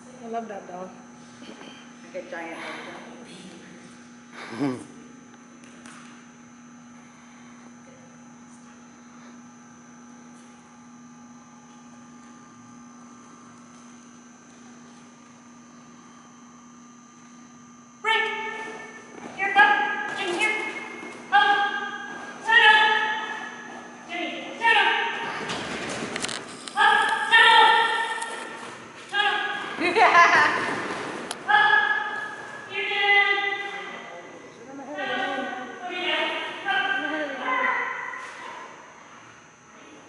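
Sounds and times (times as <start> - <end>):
faint steady hum: 0.0 - 40.0.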